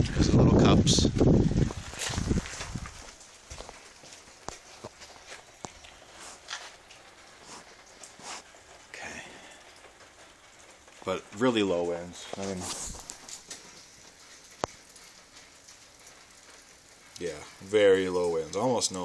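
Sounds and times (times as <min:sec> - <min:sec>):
wind buffeting microphone: 0:00.0 - 0:03.7
light footsteps: 0:01.1 - 0:08.9, 0:12.1 - 0:15.2.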